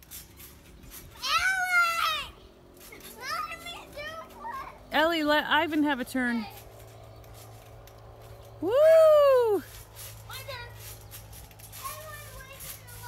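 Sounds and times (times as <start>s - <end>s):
loud woo cheer: 8.6s - 9.7s
faint children's voices: 10.3s - 13.0s.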